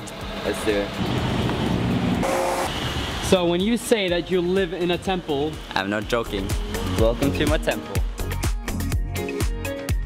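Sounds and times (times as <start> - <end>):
vehicle road noise rumbling: 0.0 - 8.0.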